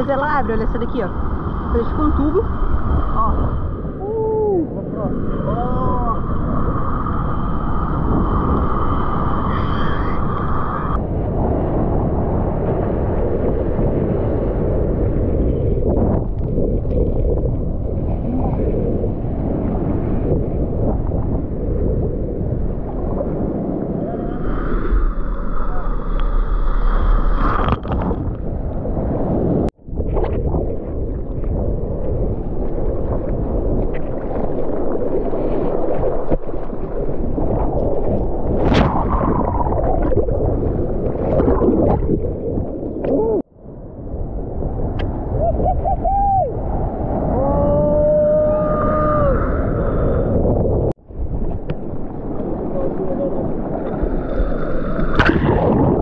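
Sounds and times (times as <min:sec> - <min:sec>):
wind buffeting microphone: 0:00.0 - 0:56.0
seawater sloshing and splashing: 0:32.6 - 0:43.0.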